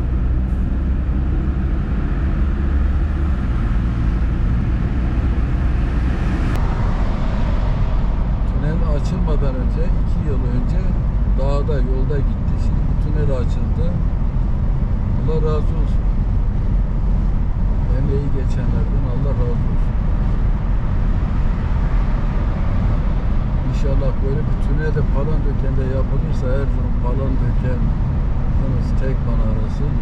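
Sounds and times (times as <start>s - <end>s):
car road rumble: 0.0s - 30.0s.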